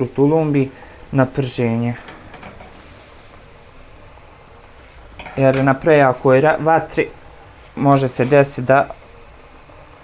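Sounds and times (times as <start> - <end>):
dough sizzling in hot oil: 0.0 - 10.0.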